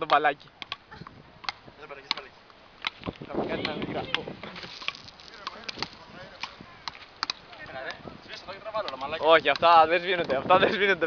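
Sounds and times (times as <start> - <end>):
wooden paddles striking ball: 0.0 - 8.0, 8.7 - 10.6.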